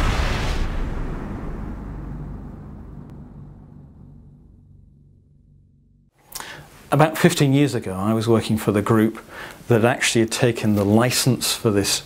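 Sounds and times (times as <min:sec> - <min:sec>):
deep cinematic boom rumble: 0:00.0 - 0:06.2.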